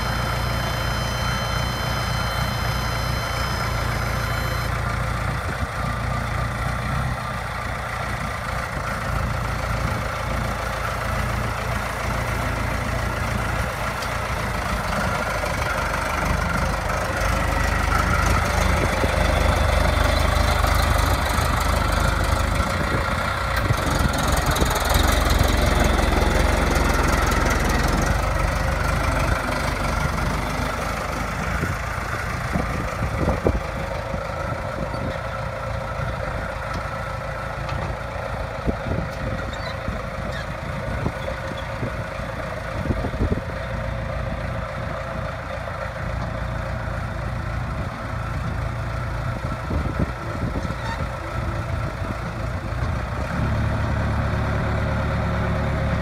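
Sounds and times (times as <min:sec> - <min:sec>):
high-pitched steady tone: 0:00.0 - 0:05.2
diesel loader engine running: 0:00.0 - 0:56.0.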